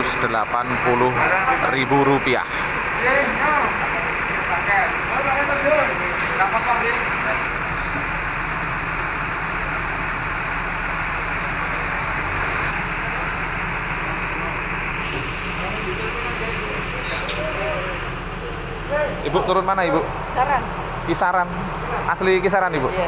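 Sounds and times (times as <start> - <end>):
road traffic: 0.0 - 23.0
background voices: 11.4 - 23.0.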